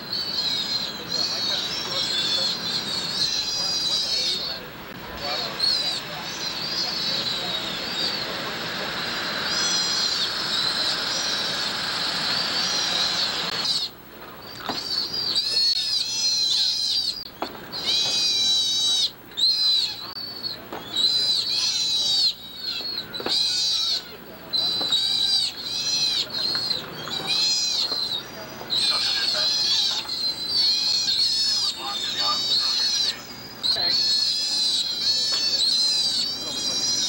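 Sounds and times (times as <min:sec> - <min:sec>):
sea otters calling: 0:00.0 - 0:37.0.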